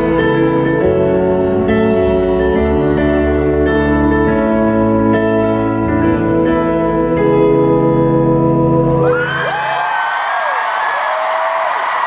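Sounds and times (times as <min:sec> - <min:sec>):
piano chords through sound system: 0:00.0 - 0:10.6
crowd cheering and screaming: 0:09.0 - 0:12.0.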